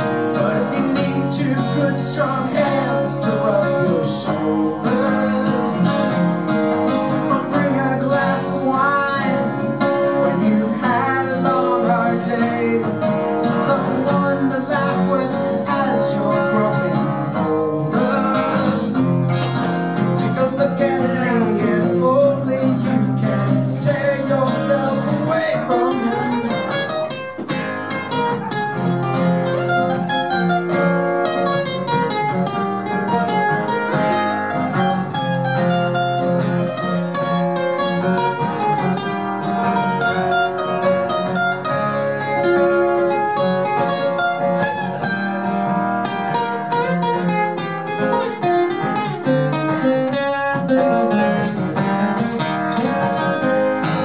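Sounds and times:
acoustic guitars playing: 0:00.0 - 0:54.0.

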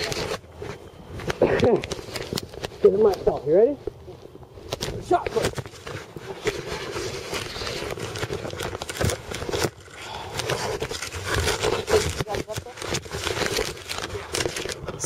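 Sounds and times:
camcorder handling rustling: 0:04.7 - 0:15.0.

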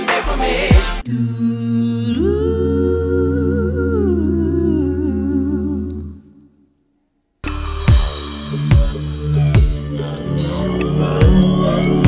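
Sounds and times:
harmonized vocal chord: 0:00.0 - 0:06.2, 0:07.5 - 0:12.0
man singing low note: 0:07.9 - 0:12.0.

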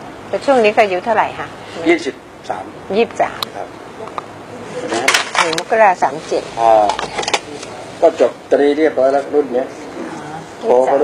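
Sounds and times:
man speaking: 0:01.7 - 0:02.8, 0:03.4 - 0:05.1, 0:06.9 - 0:11.0.

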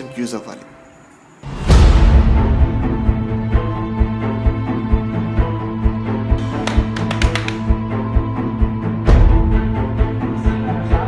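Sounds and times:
run of sharp taps: 0:06.4 - 0:07.7.

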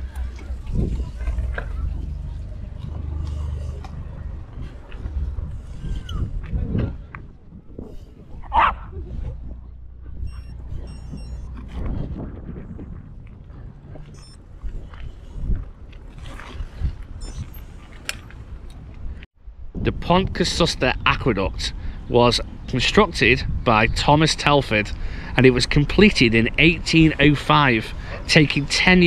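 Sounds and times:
bicycle tyres rolling: 0:00.0 - 0:08.3, 0:09.6 - 0:19.2
wind rumble on microphone: 0:00.0 - 0:29.0.

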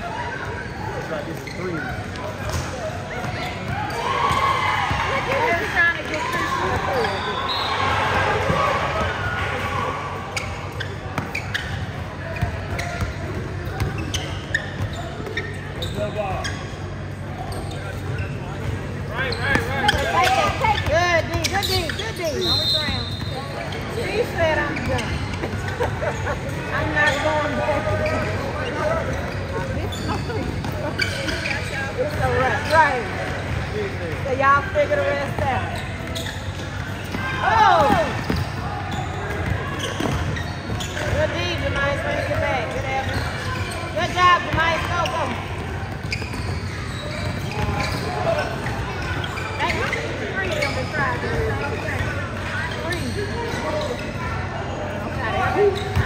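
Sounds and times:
people calling and talking: 0:00.0 - 0:56.0.

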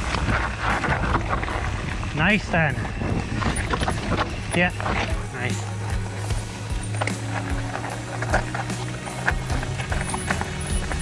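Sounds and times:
wind buffeting microphone: 0:00.0 - 0:06.7
bike clattering: 0:00.0 - 0:11.0
tyres crunching on loose stones: 0:00.0 - 0:11.0.

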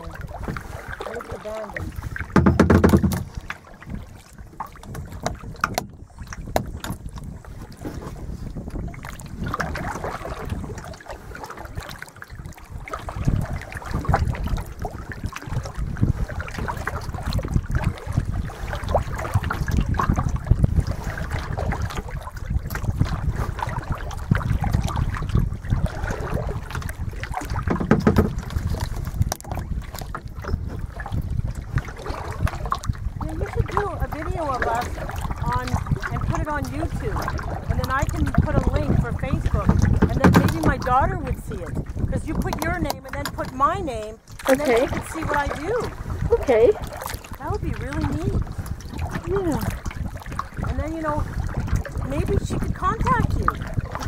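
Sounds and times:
water lapping against kayak hull: 0:00.0 - 0:54.0
wind buffeting microphone: 0:00.0 - 0:54.0.

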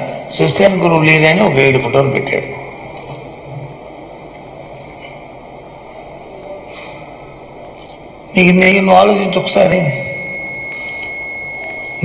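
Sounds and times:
faint low hum: 0:00.0 - 0:12.0
microphone background hiss: 0:00.0 - 0:12.0.

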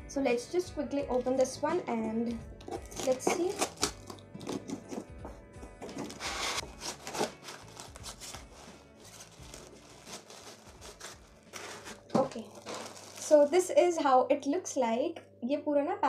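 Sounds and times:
soft background music: 0:00.0 - 0:16.0
cardboard and plastic rustling: 0:05.8 - 0:13.7.

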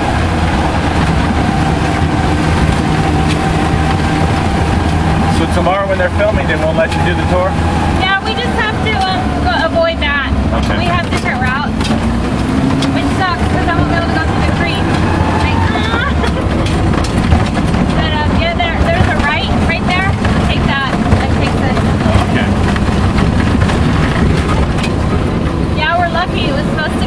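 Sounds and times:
vehicle engine and road rumble: 0:00.0 - 0:27.0
vehicle jolts and rattles: 0:00.0 - 0:27.0.

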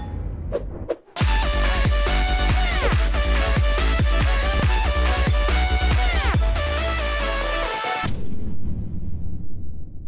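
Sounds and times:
electronic intro music: 0:01.2 - 0:08.1
low rumble: 0:08.1 - 0:10.0.

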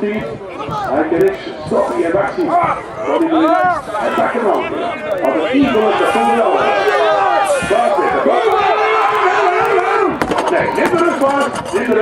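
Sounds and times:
crowd shouting: 0:00.4 - 0:12.0
sharp clicks: 0:00.8 - 0:05.9.

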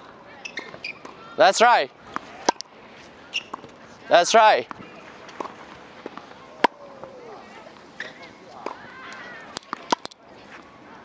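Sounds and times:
tennis racket striking ball: 0:02.1 - 0:02.6
tennis ball bouncing: 0:02.1 - 0:02.7, 0:03.3 - 0:06.9, 0:08.0 - 0:10.2.

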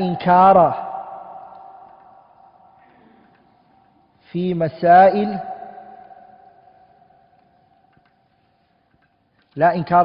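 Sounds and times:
echo of spoken word: 0:00.0 - 0:03.4, 0:04.2 - 0:06.8, 0:09.5 - 0:10.0.

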